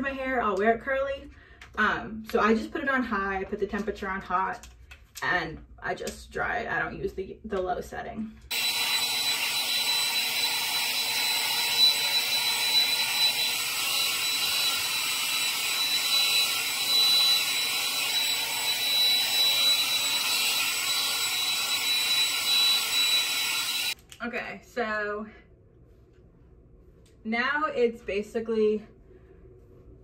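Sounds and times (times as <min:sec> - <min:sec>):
hair dryer blowing: 0:08.5 - 0:24.0.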